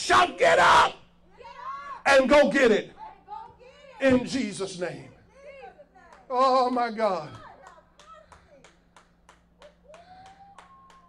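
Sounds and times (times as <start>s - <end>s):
steady low hum: 0.0s - 11.0s
rhythmic hand clapping: 6.0s - 11.0s.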